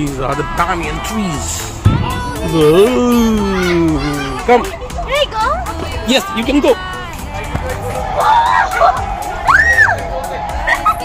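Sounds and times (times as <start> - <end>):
background music: 0.0 - 11.0
crowd chatter: 0.0 - 11.0.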